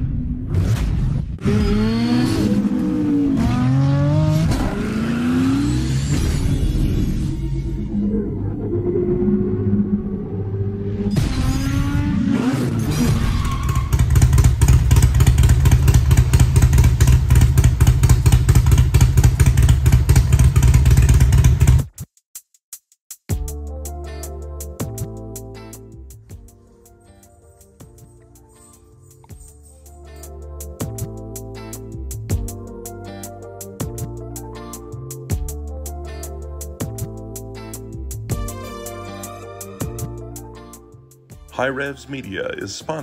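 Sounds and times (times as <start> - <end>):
motorcycle engine revving: 1.4 - 7.6, 9.1 - 21.9.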